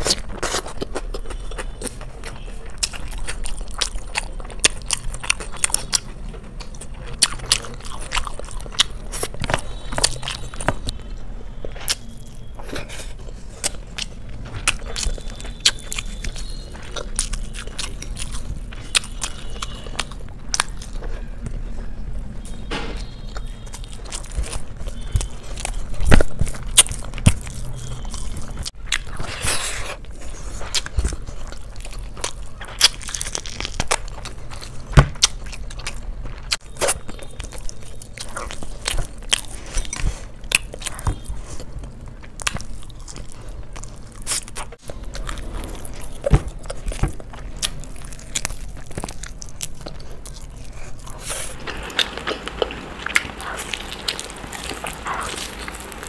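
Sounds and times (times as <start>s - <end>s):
wet chewing and lip smacks: 0.0s - 11.0s, 11.6s - 21.6s, 23.1s - 56.0s.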